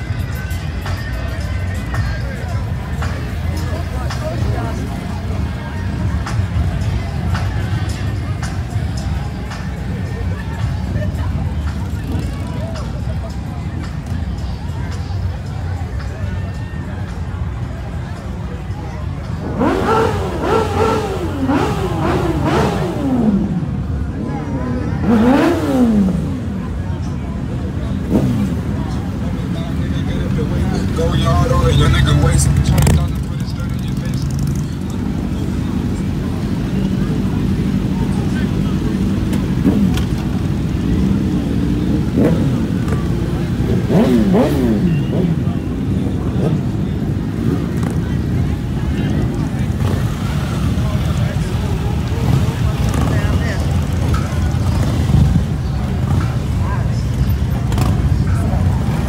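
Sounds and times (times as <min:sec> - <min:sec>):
crowd voices: 0:00.0 - 0:59.0
low engine rumble: 0:00.0 - 0:59.0
motorcycle engines revving: 0:00.0 - 0:59.0
motorcycles idling: 0:00.0 - 0:59.0.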